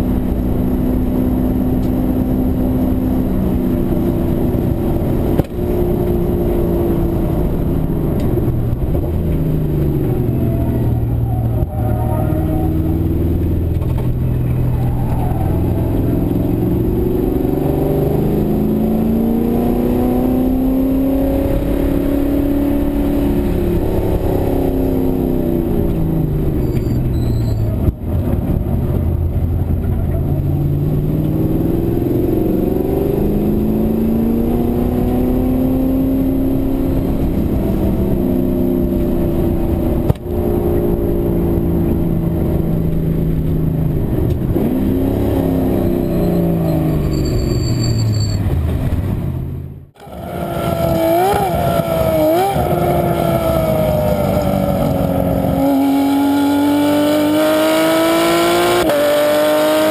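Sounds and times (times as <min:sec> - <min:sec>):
race car engine revving: 0:50.0 - 0:59.9.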